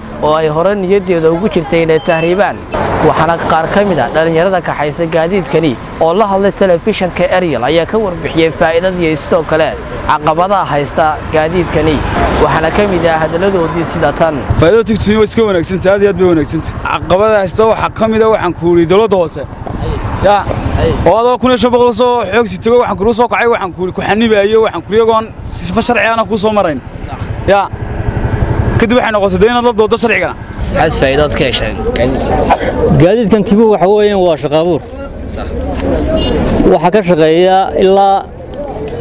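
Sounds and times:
auto-rickshaw engine pulsing: 0.0 - 39.0
passing motor vehicles: 0.0 - 39.0
man talking: 0.1 - 27.8, 28.7 - 39.0.

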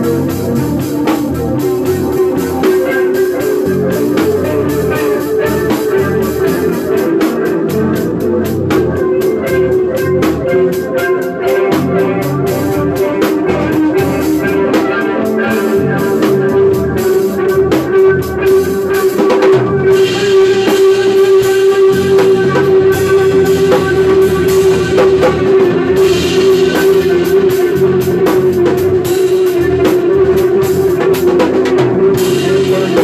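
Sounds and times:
drum kit playing: 0.0 - 33.0
long held instrumental note: 0.0 - 33.0.

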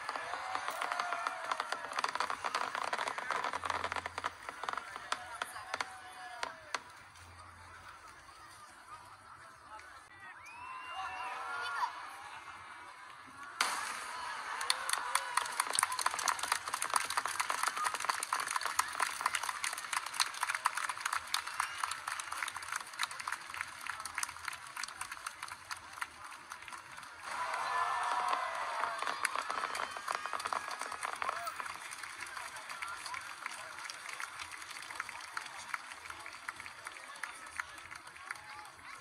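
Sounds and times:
fireworks crackling: 0.0 - 7.0, 13.6 - 22.5, 27.5 - 35.1
crowd voices: 0.0 - 39.0.

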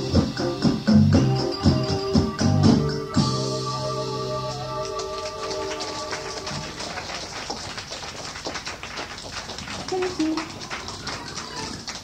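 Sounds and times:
music: 0.0 - 6.8
audience clapping: 4.4 - 12.0
voice from crowd: 9.6 - 12.0.

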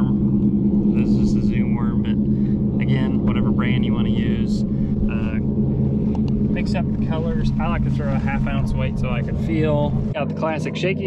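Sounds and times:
low motor hum: 0.0 - 11.0
man talking: 1.0 - 2.2, 2.8 - 5.4, 6.5 - 11.0.

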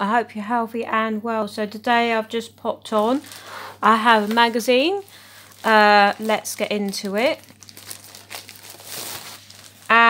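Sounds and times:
plastic wrapping crinkling: 2.9 - 10.0.

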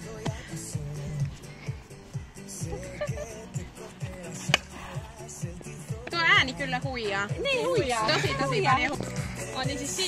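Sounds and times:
background music with steady beat: 0.0 - 10.0
bat striking ball: 4.5 - 4.8.

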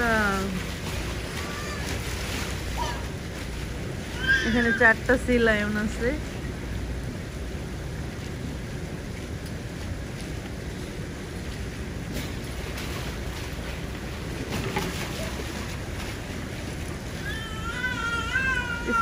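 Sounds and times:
water lapping: 0.0 - 19.0
wind rumble on microphone: 0.0 - 19.0
child squealing: 1.4 - 1.9, 4.1 - 4.8, 17.2 - 19.0.

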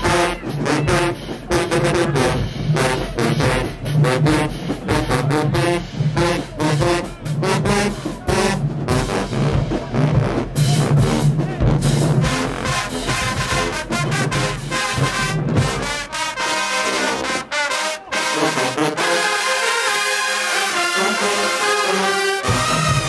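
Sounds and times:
marching band brass: 0.0 - 23.0.

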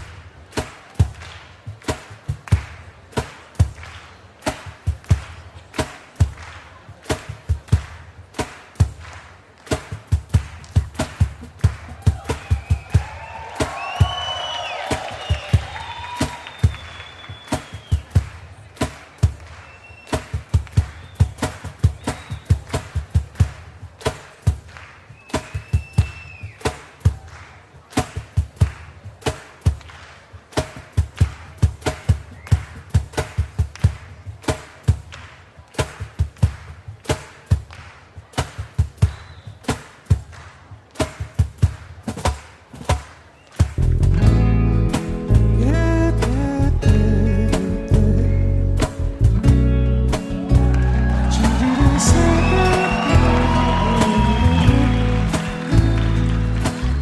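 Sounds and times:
drum kit playing: 0.0 - 57.0
audience whistling and cheering: 11.6 - 18.7, 19.4 - 23.0, 25.1 - 27.4, 32.1 - 33.0, 39.0 - 39.8, 49.7 - 57.0.

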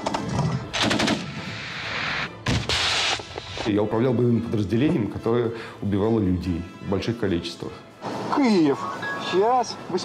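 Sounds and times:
rifle gunfire: 0.7 - 1.4.

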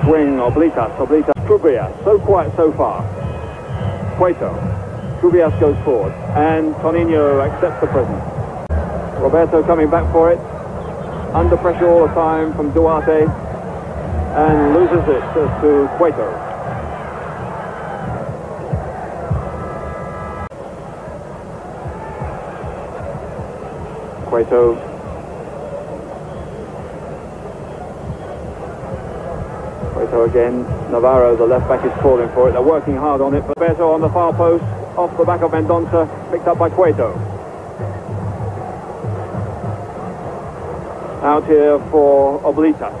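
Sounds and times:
stadium crowd noise: 0.0 - 43.0
low drumbeat: 1.4 - 10.4, 11.3 - 19.9, 28.0 - 40.0.

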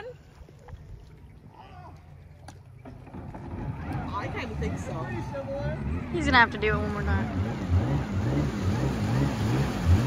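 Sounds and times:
jet ski engine idling: 2.2 - 10.0.

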